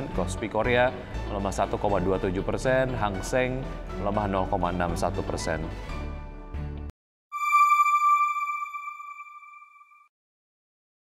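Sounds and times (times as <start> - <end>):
background music: 0.0 - 9.7
electronic chime: 7.4 - 10.1.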